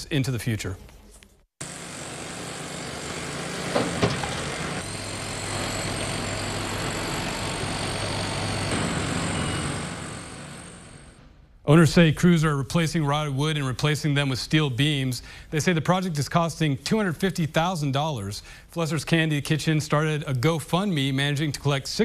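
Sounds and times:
construction site noise: 1.6 - 11.4
construction machinery engine hum: 1.6 - 11.6
steady whine: 1.6 - 11.6.

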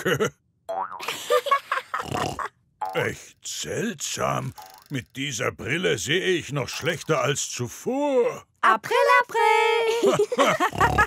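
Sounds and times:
cartoon pig grunting and snorting: 2.0 - 3.4, 10.6 - 11.0.

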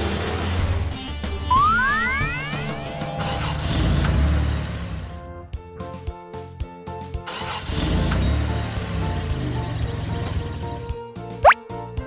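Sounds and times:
monster truck engine rumbling: 0.0 - 5.3, 7.4 - 10.9.

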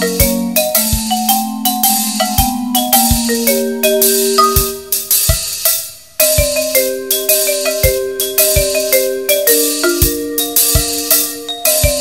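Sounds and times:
percussion ensemble music: 0.0 - 12.0.

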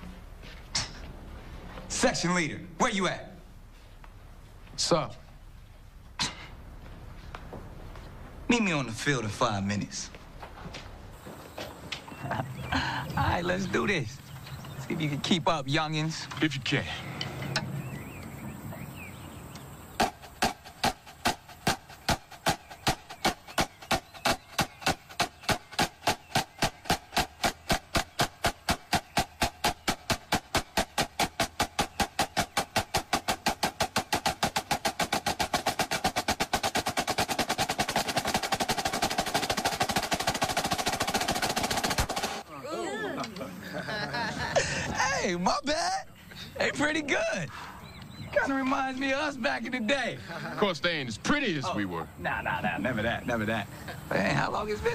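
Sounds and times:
voices: 11.2 - 20.5, 37.5 - 54.9
snare drum speeding into a roll: 20.0 - 42.4.

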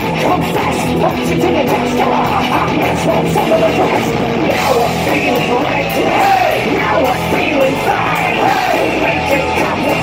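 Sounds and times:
distorted electric guitar: 0.0 - 10.0
live rock band playing: 0.0 - 10.0
singer yelling: 0.0 - 10.0.

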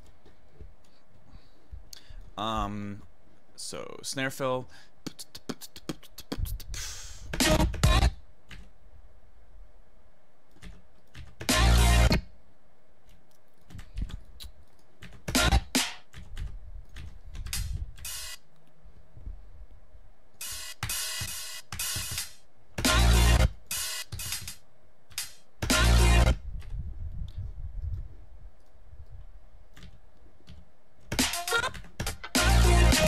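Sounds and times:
electronic drums snippets: 7.3 - 8.1, 15.2 - 16.0, 20.4 - 24.5, 25.6 - 26.4, 31.1 - 33.0.

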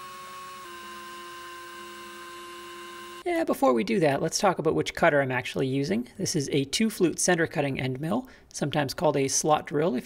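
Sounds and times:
mill spindle motor whining: 0.0 - 3.3.

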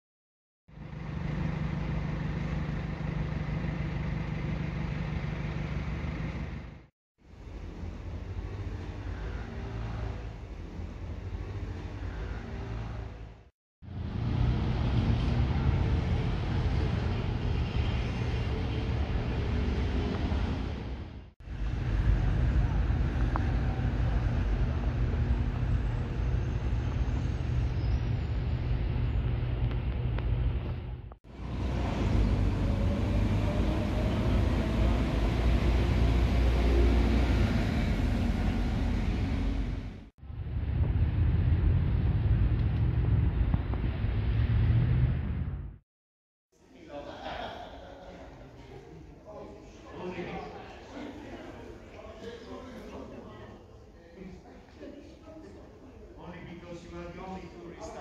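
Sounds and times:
deep rumble of road traffic: 0.7 - 45.8.

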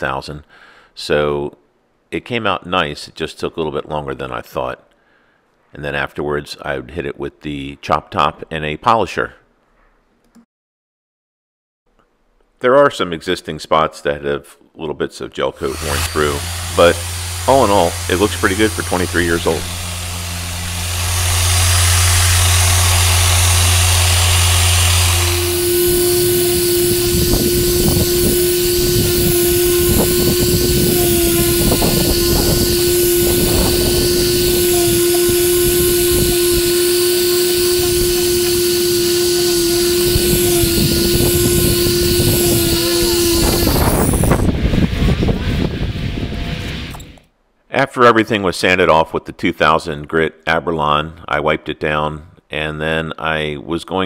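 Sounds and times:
orbital sander sanding: 15.6 - 45.7.

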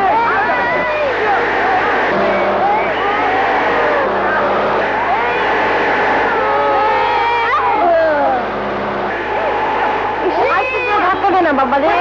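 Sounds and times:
noisy rush: 0.0 - 12.0.

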